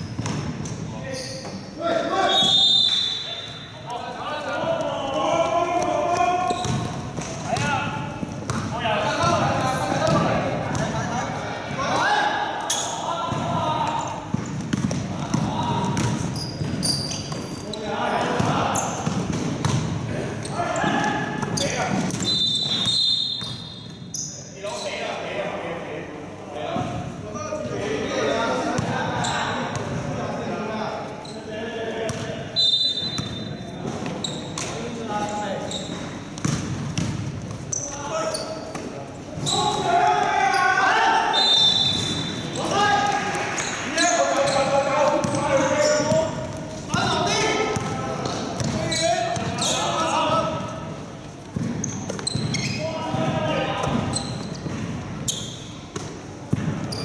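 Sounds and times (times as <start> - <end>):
basketball bouncing on court: 0.0 - 0.8, 5.4 - 11.0, 13.3 - 17.6, 18.3 - 20.0, 35.9 - 37.8, 43.3 - 49.8, 51.5 - 57.0
shoe squeaks: 0.0 - 3.8, 6.2 - 7.8, 12.6 - 14.7, 15.3 - 18.0, 20.4 - 25.0, 29.2 - 29.6, 31.2 - 31.5, 32.6 - 36.6, 37.6 - 42.9, 43.5 - 50.4, 51.6 - 56.1.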